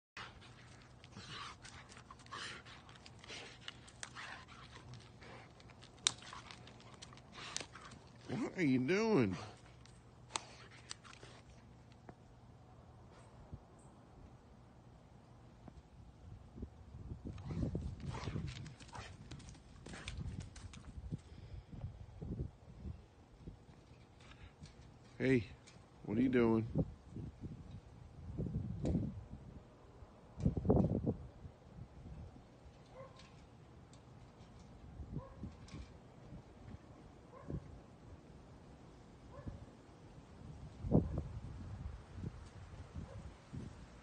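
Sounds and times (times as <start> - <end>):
stick cracking: 0.2 - 8.3, 9.6 - 12.1
dog chewing a stick: 0.2 - 8.5, 9.4 - 12.2.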